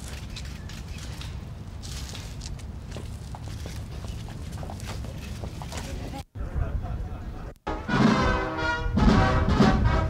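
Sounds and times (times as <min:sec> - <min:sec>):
footsteps on brick paving: 0:00.0 - 0:06.3.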